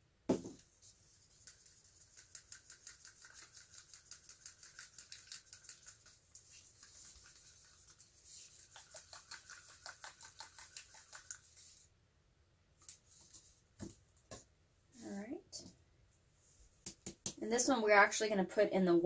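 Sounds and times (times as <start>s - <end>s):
stick scraping paint in cup: 1.3s - 11.8s.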